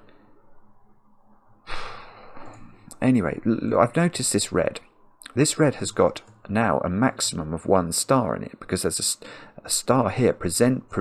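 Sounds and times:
man sighing: 1.7s - 2.8s.

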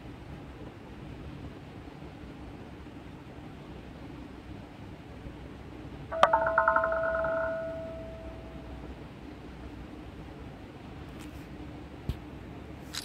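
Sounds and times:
steady low hum: 5.4s - 10.6s
bell-like electronic chime: 6.2s - 8.7s.

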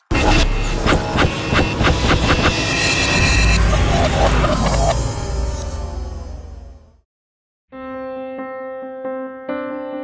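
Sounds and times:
electronic music: 0.0s - 7.0s
steady high tone: 0.1s - 7.0s.

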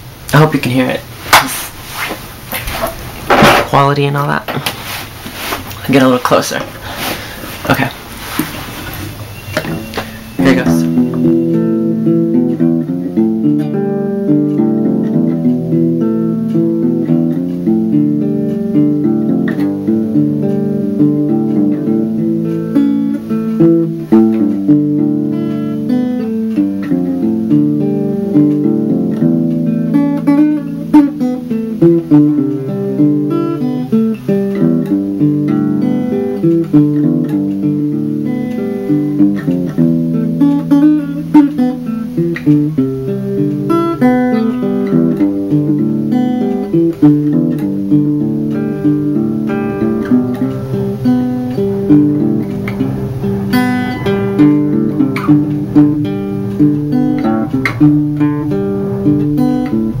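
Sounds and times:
acoustic guitar fingerpicking: 1.2s - 60.0s.

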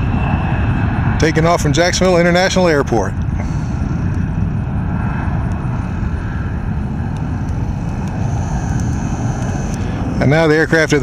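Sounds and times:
jet bomber engines rumbling: 0.0s - 11.0s.

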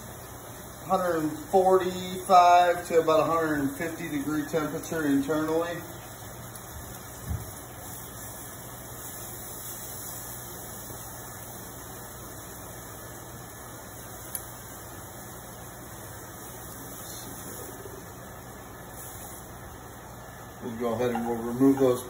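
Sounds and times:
range hood fan hum: 0.0s - 22.0s
scallops sizzling in a pan: 0.0s - 22.0s.

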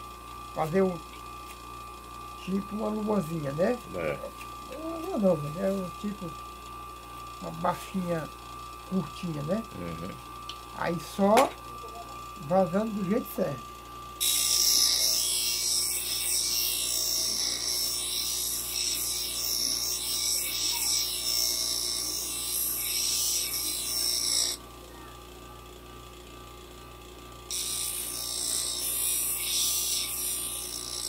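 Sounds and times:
grinder motor hum: 0.0s - 31.0s
knife grinding on wheel: 14.2s - 24.6s, 27.5s - 31.0s.

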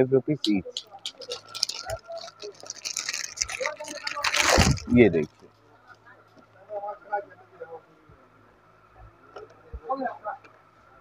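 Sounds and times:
plastic packaging crinkling: 0.8s - 5.6s.

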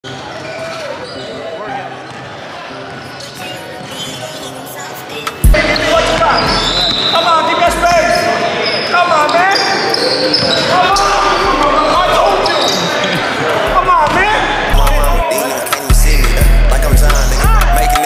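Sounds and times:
players' voices echoing: 0.3s - 18.0s.

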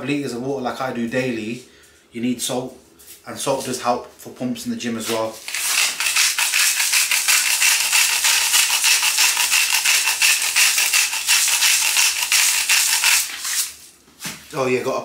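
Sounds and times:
salt grinder crunching: 5.4s - 13.8s.

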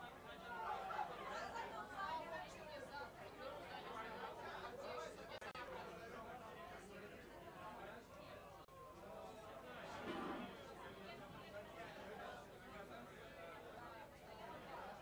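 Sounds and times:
indistinct chatter: 0.0s - 15.0s.

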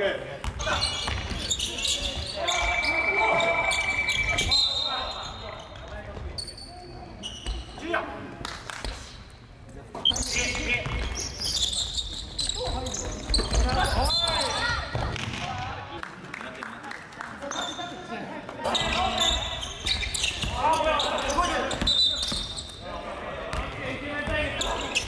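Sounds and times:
players' voices and shouts: 0.0s - 8.3s, 12.4s - 16.0s, 17.6s - 25.0s
referee's whistle: 1.4s - 5.4s, 21.1s - 22.6s.

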